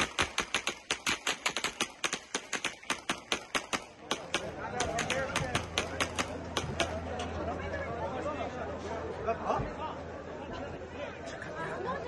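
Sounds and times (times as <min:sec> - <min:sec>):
rapid gunfire: 0:00.0 - 0:07.0.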